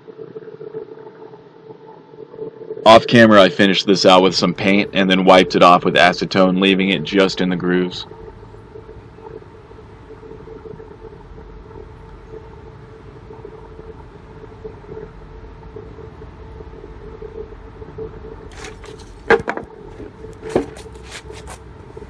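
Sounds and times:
low hum and rumble: 0:00.0 - 0:22.0.

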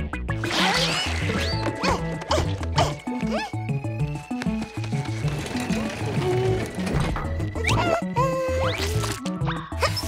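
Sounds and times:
cartoon music with bass line: 0:05.8 - 0:10.0.

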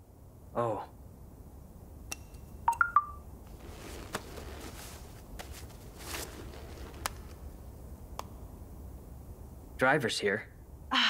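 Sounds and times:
phone notification chime: 0:02.7 - 0:03.2.

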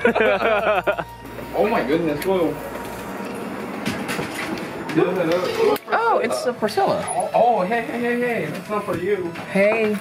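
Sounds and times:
rustling clatter of people entering: 0:01.4 - 0:06.1.

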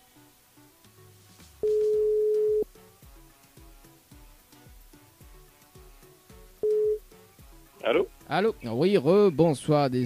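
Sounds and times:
soft background music: 0:00.0 - 0:10.0
telephone ringback beep: 0:01.6 - 0:02.6, 0:06.6 - 0:07.0.

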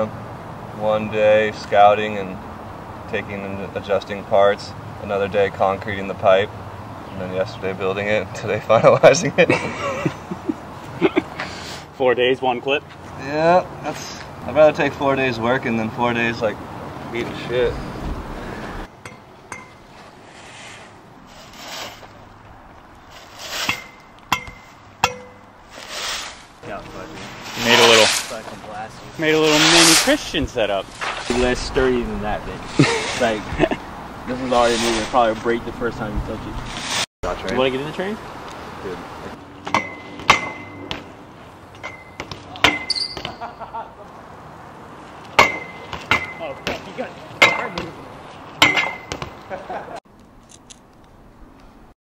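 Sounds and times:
palm frond scraping pavement: 0:13.8 - 0:18.9, 0:19.8 - 0:25.0, 0:25.6 - 0:39.4
metal pipe clanking: 0:19.0 - 0:19.8, 0:23.7 - 0:25.5.

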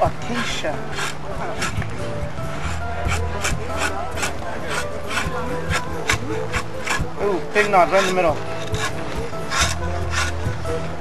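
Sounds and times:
drawknife scraping wood: 0:00.0 - 0:11.0.

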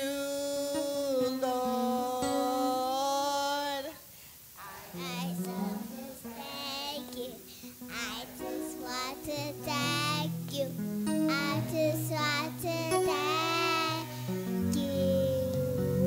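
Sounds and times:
adults and children singing: 0:04.6 - 0:10.6, 0:11.3 - 0:16.0.

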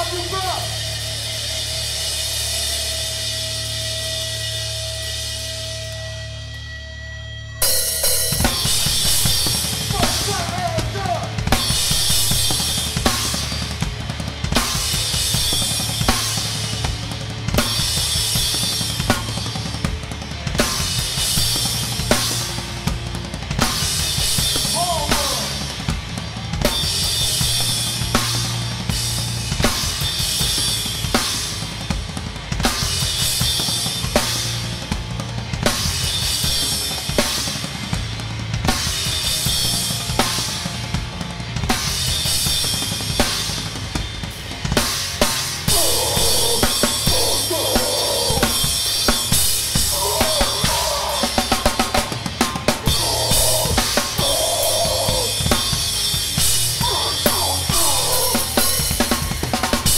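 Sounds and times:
crashing cymbals: 0:00.0 - 0:20.0, 0:41.7 - 0:59.9
distorted guitar and bass: 0:00.0 - 0:59.9
hardcore band playing live: 0:00.0 - 0:59.9.

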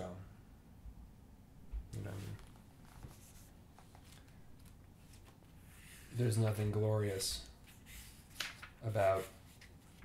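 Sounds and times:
person speaking: 0:01.9 - 0:02.6, 0:08.8 - 0:09.5
book pages turning: 0:02.0 - 0:06.1, 0:07.6 - 0:10.0.

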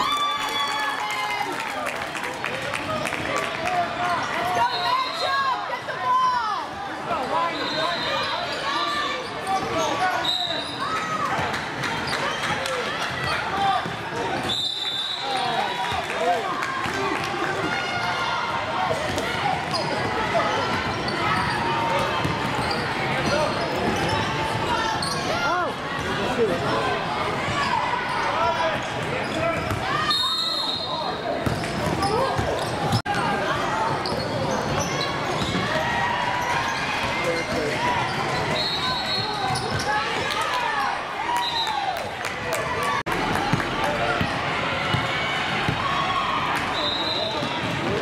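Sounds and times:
sneakers squeaking: 0:07.1 - 0:16.0, 0:18.9 - 0:41.7.

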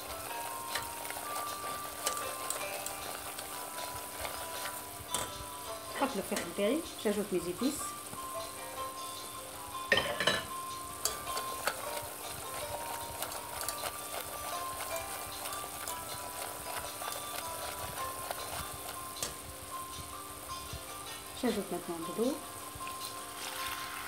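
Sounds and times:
whisk clicking against pot: 0:00.0 - 0:06.6, 0:11.0 - 0:20.1
roux sizzling in pot: 0:00.0 - 0:24.0.

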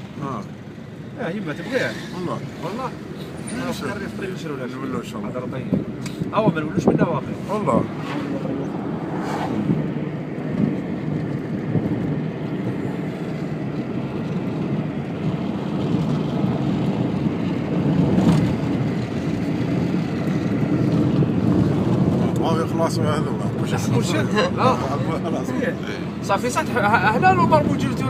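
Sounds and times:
car interior rumble: 0:00.0 - 0:28.0.

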